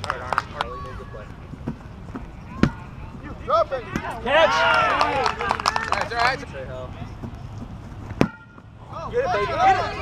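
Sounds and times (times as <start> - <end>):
players shouting: 2.4 - 6.6, 8.2 - 10.0
ball kicked thump: 8.2 - 8.4.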